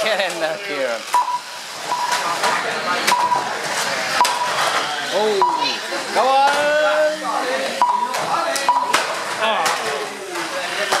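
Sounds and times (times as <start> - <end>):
short electronic beeps: 1.2 - 2.3, 3.1 - 3.5, 4.2 - 4.6, 5.3 - 5.8, 7.8 - 9.0.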